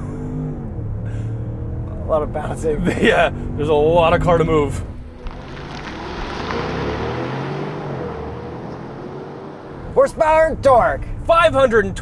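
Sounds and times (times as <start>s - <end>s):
car engine accelerating: 0.0s - 10.4s.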